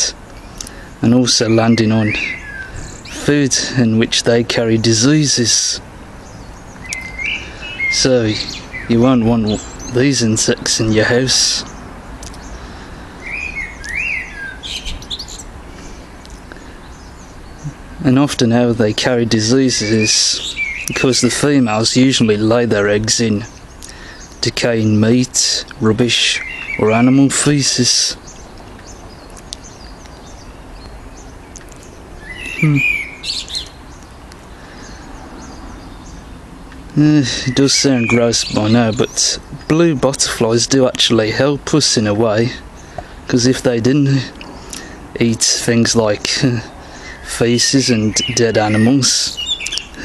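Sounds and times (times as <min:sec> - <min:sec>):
high bird chirps: 0:00.0 - 0:03.8, 0:04.6 - 0:43.1, 0:44.2 - 0:50.0
bird whistling: 0:01.5 - 0:03.2, 0:06.2 - 0:10.0, 0:13.2 - 0:16.0, 0:19.9 - 0:21.0, 0:26.3 - 0:27.0, 0:31.8 - 0:34.0, 0:37.3 - 0:39.2, 0:48.0 - 0:50.0.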